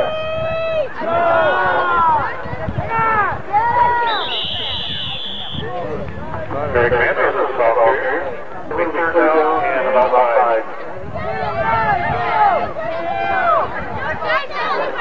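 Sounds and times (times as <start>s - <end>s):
spectators shouting and talking: 0.0s - 15.0s
referee's whistle blast: 4.0s - 5.8s.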